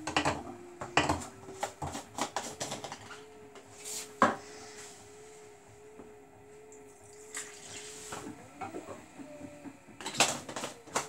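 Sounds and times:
washing machine motor whine: 0.0s - 11.0s.

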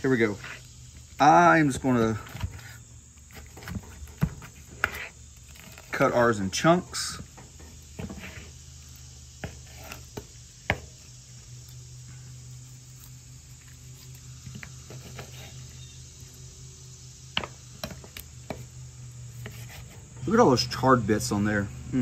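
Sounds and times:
steady low hum: 0.0s - 22.0s.

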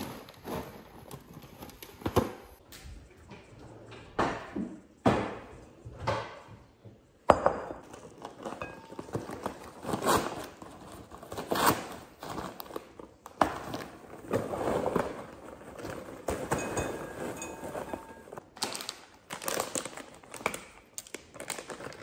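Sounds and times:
popcorn bag crinkling: 17.2s - 22.0s.

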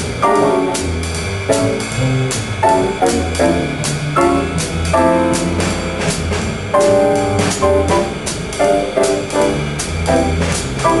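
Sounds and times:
drum kit cymbals keeping time: 0.0s - 11.0s
piano chord stabs: 0.0s - 11.0s
walking bass: 0.0s - 11.0s.

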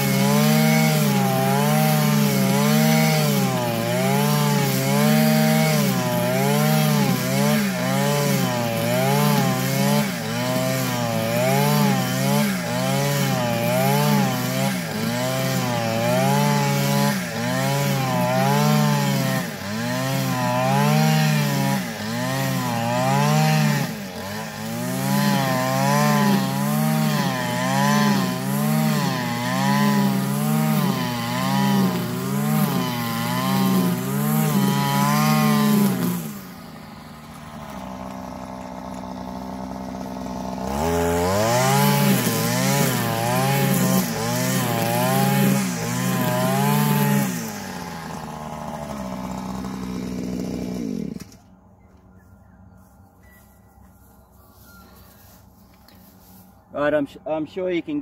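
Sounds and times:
string trimmer cutting grass: 0.0s - 58.0s.

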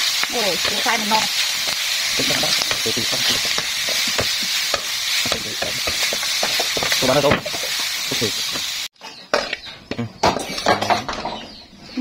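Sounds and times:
food sizzling in a metal pan: 0.0s - 9.0s.

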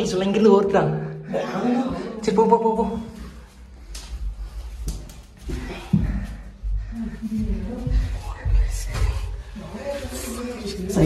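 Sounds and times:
shuffling through stone passage: 3.0s - 11.0s.

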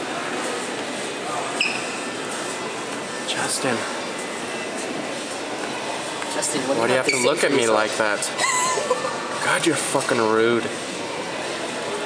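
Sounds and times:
shop interior background noise: 0.0s - 12.0s.

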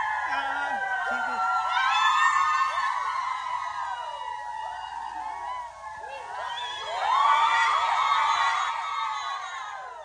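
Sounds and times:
girls screaming and cheering: 0.0s - 10.0s.

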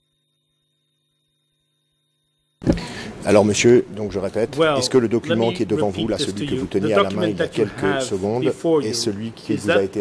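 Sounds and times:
faint steady hum: 0.0s - 10.0s
man speaking: 3.2s - 10.0s.

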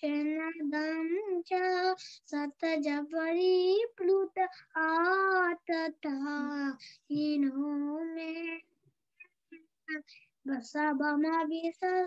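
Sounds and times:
child singing unaccompanied: 0.0s - 8.8s, 9.8s - 12.0s
child breathing: 6.7s - 7.1s.

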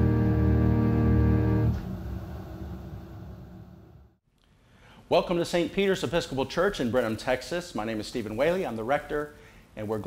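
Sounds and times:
organ chord: 0.0s - 2.2s.

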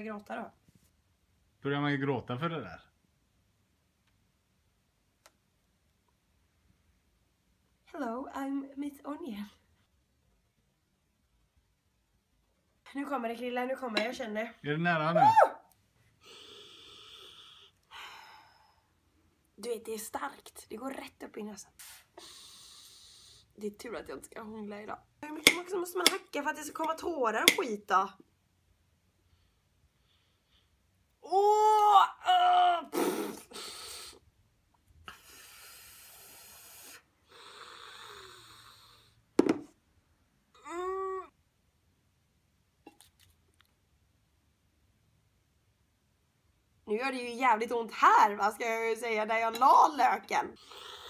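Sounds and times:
woman breathing heavily: 22.2s - 23.5s.

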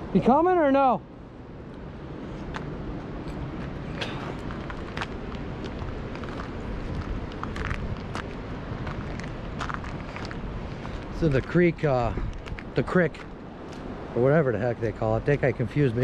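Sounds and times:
creek water rushing: 0.0s - 16.0s
footsteps on stony bank: 2.3s - 14.0s.

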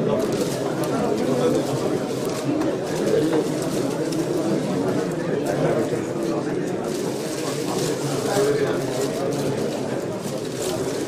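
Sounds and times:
hubbub of many people talking: 0.0s - 11.0s.

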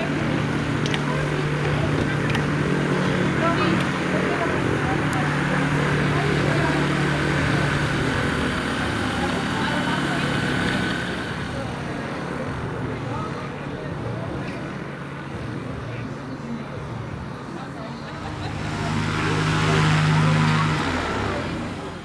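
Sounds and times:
gyrocopter engine and propeller: 0.0s - 22.0s.

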